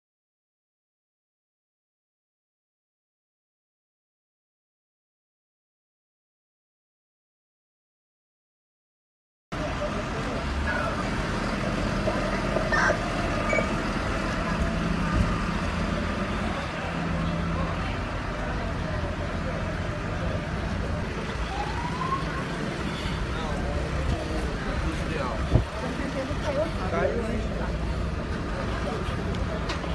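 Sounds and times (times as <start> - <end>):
vehicle engines running: 9.6 - 29.9.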